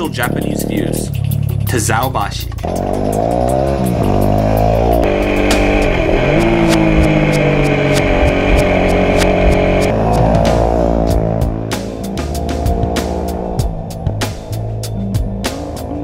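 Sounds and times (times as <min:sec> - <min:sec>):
motorcycle engine revving: 0:00.0 - 0:16.0
music playing: 0:00.0 - 0:16.0.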